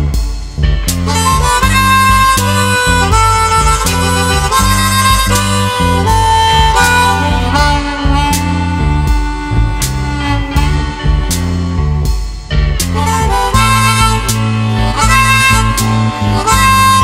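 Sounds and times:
bass and guitar riff: 0.0 - 17.0
harmonica solo: 0.0 - 17.0.

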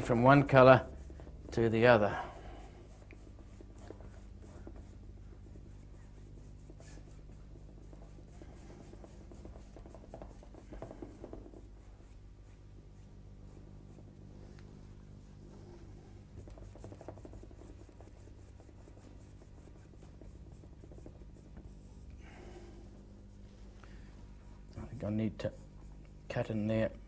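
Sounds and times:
paintbrush rubbing on canvas: 0.0 - 27.0
steady low hum: 0.0 - 27.0.

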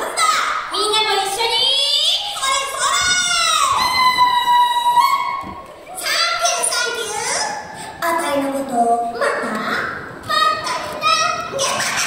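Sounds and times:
high childlike voice over loudspeakers: 5.9 - 12.0.

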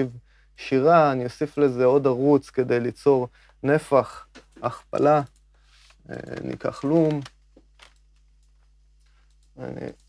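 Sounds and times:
faint steady hum: 0.0 - 10.0
person speaking: 0.0 - 10.0.

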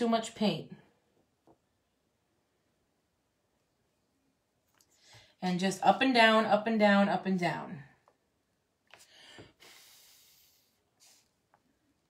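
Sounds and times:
faint hiss: 9.0 - 11.8.

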